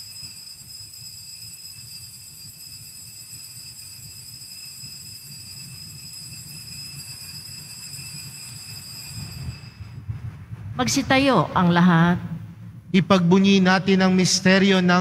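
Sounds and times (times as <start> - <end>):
altar bells ringing: 0.0 - 10.0
low rumble: 9.8 - 14.1.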